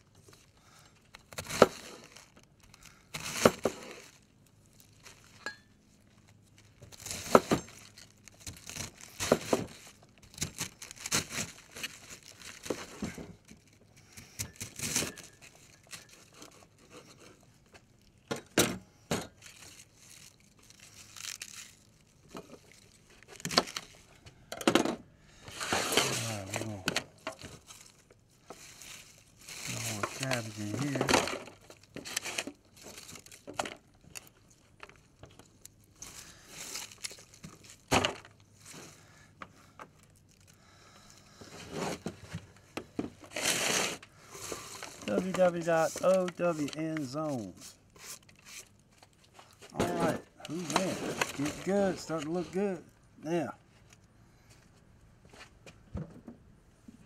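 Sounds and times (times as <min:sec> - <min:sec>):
cabbage leaves crunching: 0:19.4 - 0:22.0, 0:27.6 - 0:31.0
man speaking: 0:26.0 - 0:27.0, 0:29.7 - 0:31.1, 0:45.0 - 0:47.6, 0:49.8 - 0:53.6.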